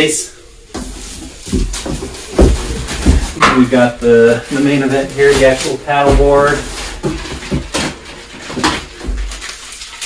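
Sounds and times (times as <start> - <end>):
packaging rustling: 0.7 - 10.0
dull thud: 0.8 - 4.1.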